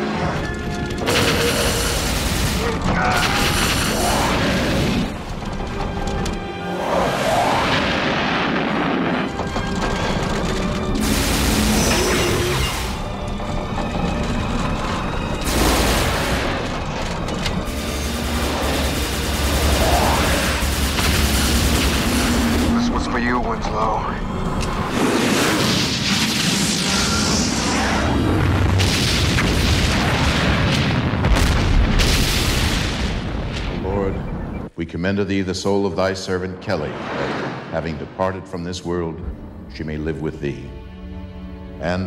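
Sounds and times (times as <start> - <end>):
film score music: 0.0 - 42.0
explosion booms: 28.2 - 33.9.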